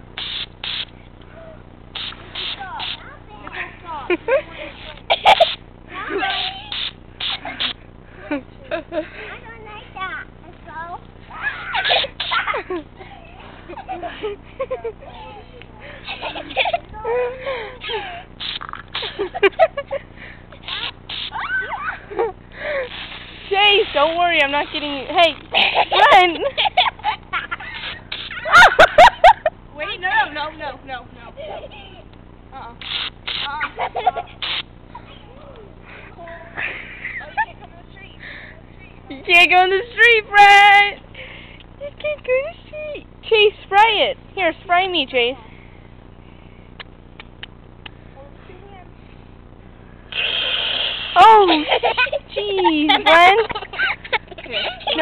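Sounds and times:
aerosol can spraying: 0:00.2 - 0:00.9, 0:01.9 - 0:03.0, 0:04.8 - 0:05.6, 0:06.3 - 0:07.8, 0:11.8 - 0:12.5, 0:18.4 - 0:19.2, 0:20.6 - 0:21.4, 0:22.8 - 0:25.1, 0:27.7 - 0:28.5, 0:32.8 - 0:33.5, 0:34.4 - 0:34.7, 0:50.1 - 0:52.2
children squealing: 0:11.3 - 0:12.6, 0:20.6 - 0:22.8
faint clicks: 0:46.8 - 0:48.0.

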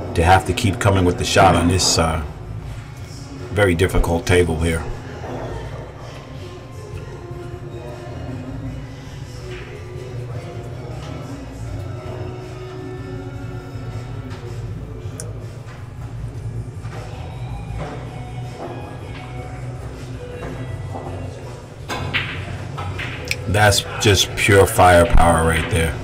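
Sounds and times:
faint background music: 0:00.0 - 0:26.0
pool balls cracking together: 0:21.8 - 0:23.8
cue striking cue ball: 0:21.9 - 0:23.5.

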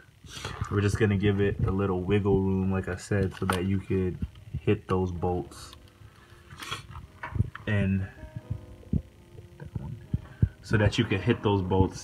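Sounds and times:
faint steady hum: 0:00.0 - 0:12.0
dull low thumps: 0:07.0 - 0:10.8.

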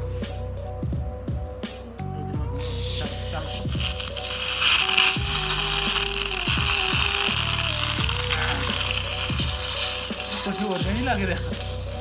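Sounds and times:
background music: 0:00.0 - 0:12.0
aerosol gas hissing into balloon: 0:02.5 - 0:12.0.

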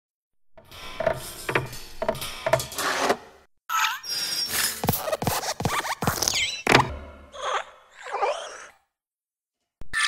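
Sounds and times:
creaky cartoon squeak: 0:03.7 - 0:05.2, 0:05.8 - 0:08.8.

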